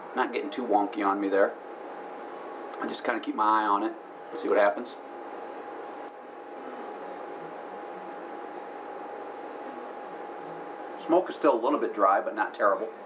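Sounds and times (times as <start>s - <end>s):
room background hiss: 0.0s - 13.0s.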